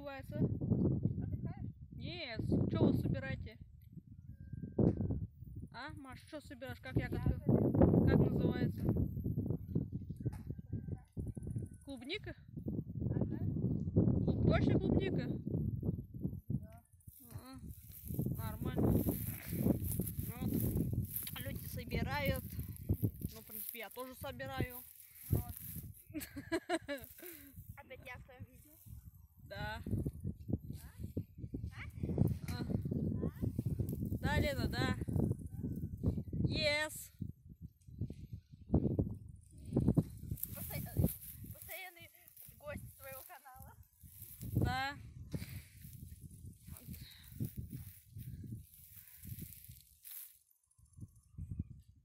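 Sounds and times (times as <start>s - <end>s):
indistinct voices talking: 17.1s - 26.3s, 39.7s - 45.2s.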